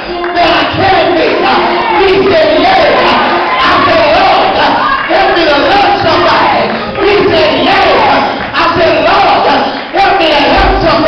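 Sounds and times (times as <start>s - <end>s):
congregation calling back: 0.0s - 11.0s
preacher chanting into microphone: 0.0s - 11.0s.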